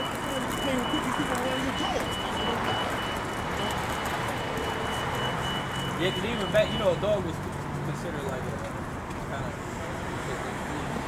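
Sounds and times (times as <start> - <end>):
vehicle warning beeper: 0.0 - 7.3
street traffic noise: 0.0 - 11.0.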